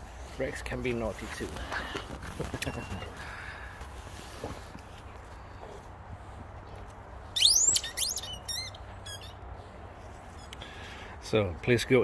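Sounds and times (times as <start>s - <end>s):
squeaky dog toy squeaking: 7.4s - 9.4s.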